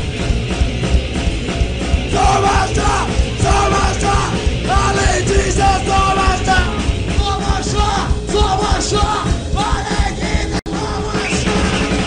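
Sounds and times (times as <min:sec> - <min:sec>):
punk band playing live: 0:00.0 - 0:12.0
shouted vocals: 0:02.1 - 0:11.3.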